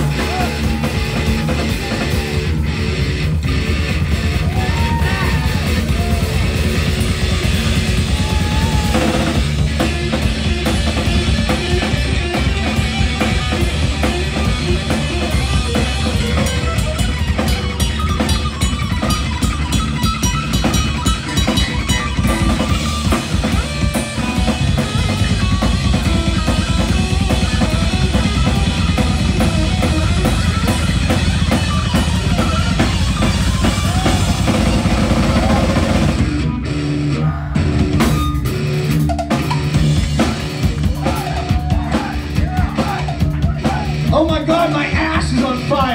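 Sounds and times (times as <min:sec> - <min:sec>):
bass guitar: 0:00.0 - 0:45.9
drum kit: 0:00.0 - 0:45.9
electric guitar: 0:00.0 - 0:45.9.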